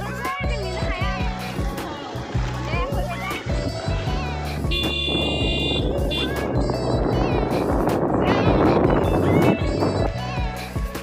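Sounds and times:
background music: 0.0s - 11.0s
motorcycle engine: 0.7s - 7.9s
wind rushing: 1.1s - 10.3s.

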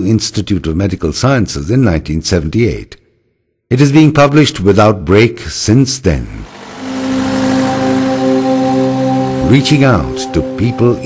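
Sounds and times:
minibus driving rushing noise: 6.4s - 10.6s
held musical drone: 6.4s - 11.0s.

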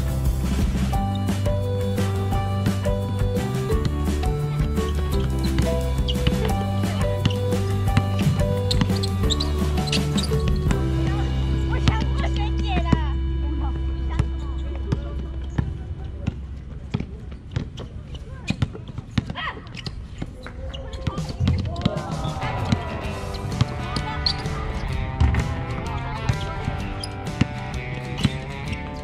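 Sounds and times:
music: 0.0s - 16.9s, 21.2s - 29.0s
voices calling out: 3.3s - 18.6s, 19.2s - 29.0s
basketball bouncing on hard court: 4.6s - 10.8s, 14.2s - 20.3s.

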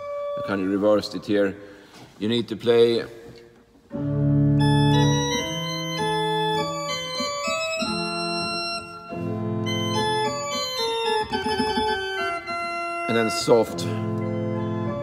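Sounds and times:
organ playing: 0.0s - 1.5s, 3.8s - 15.0s.

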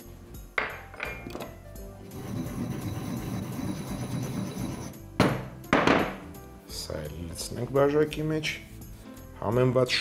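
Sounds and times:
background music: 0.0s - 10.0s
stone pestle knocking in mortar: 5.2s - 6.2s.

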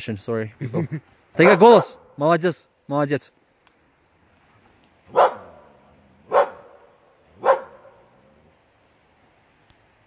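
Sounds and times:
dog barking: 1.4s - 2.0s, 5.1s - 8.1s.

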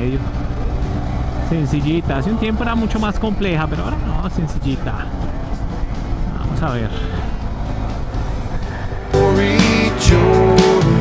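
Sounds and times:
motorcycle engine: 0.0s - 11.0s
song with guitar and singing: 8.8s - 11.0s.

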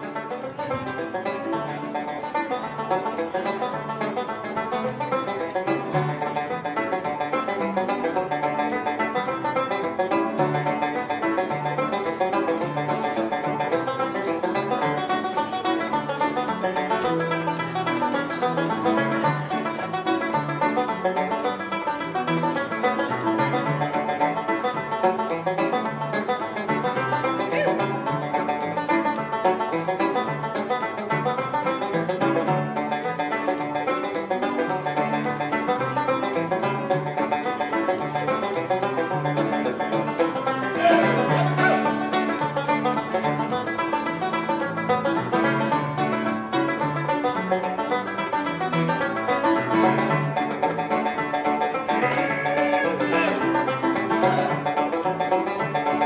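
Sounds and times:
banjo played with a pick: 0.0s - 56.0s.

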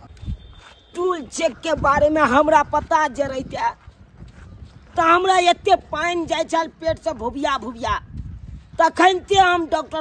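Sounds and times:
soft footsteps on dirt path: 0.0s - 10.0s
man's voice: 1.0s - 3.8s, 4.9s - 10.0s.

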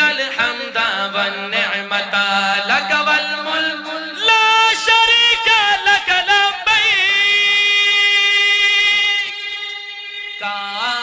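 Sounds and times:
man singing a long note: 0.0s - 11.0s.

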